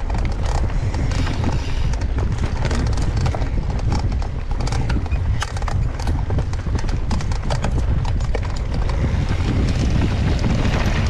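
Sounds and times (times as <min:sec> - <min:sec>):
bike clicks and rattles: 0:00.0 - 0:11.0
tyres rumbling on dirt: 0:00.0 - 0:11.0
wind: 0:00.0 - 0:11.0.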